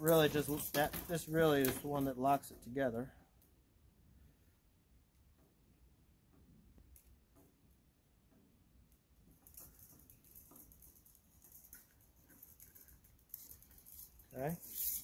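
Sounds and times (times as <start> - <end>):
steel wire clicking and scratching: 0.0 - 2.1, 8.8 - 15.0.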